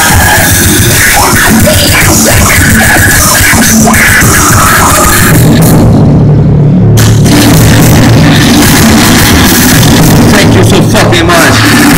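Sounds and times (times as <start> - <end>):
live metal band playing: 0.0 - 6.4.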